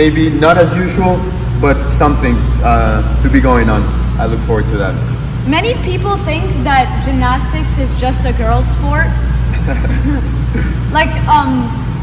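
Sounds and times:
steady low hum: 0.0s - 12.0s
person laughing: 9.5s - 11.0s.

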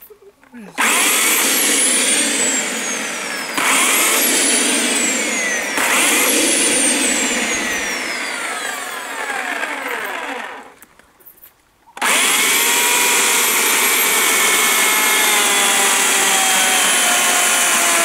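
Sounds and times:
electric chainsaw whine: 0.8s - 10.8s, 12.0s - 18.0s.

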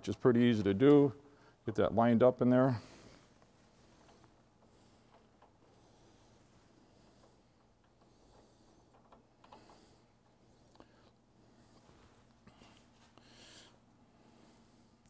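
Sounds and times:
faint clicks and rubs of parts: 1.7s - 15.0s.

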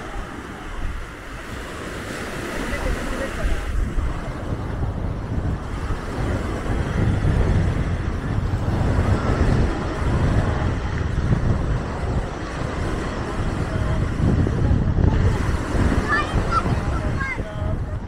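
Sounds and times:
voices in background: 0.0s - 6.9s, 9.2s - 18.0s
small waves breaking on sand: 0.0s - 18.0s
wind rumbling on microphone: 0.0s - 18.0s.

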